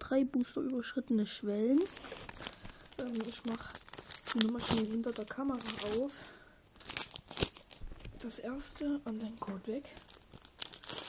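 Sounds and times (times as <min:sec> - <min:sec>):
foil wrapper crinkling: 0:01.7 - 0:08.3, 0:09.5 - 0:11.0.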